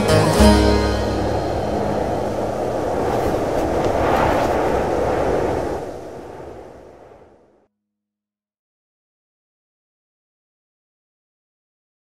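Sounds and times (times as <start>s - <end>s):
steady rushing rumble: 0.0s - 7.7s.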